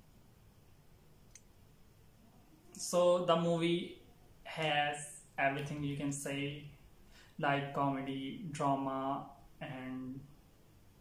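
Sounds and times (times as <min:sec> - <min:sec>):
faint click: 0:01.3 - 0:01.5.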